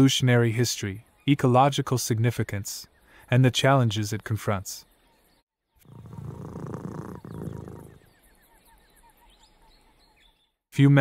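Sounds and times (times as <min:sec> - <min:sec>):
big cat growling: 0:05.8 - 0:08.0.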